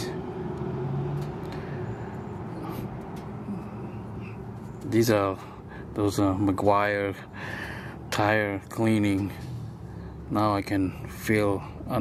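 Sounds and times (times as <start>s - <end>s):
traffic hum: 0.0s - 12.0s.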